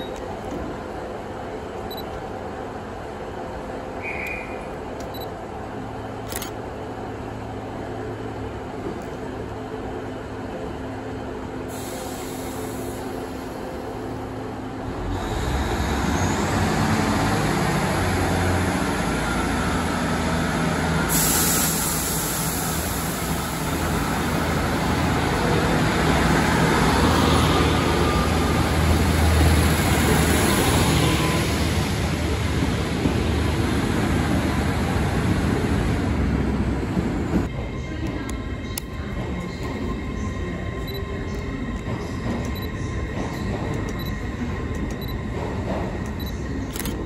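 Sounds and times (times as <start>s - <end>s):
diesel train engine rumbling: 0.0s - 47.0s
station background noise: 0.0s - 47.0s.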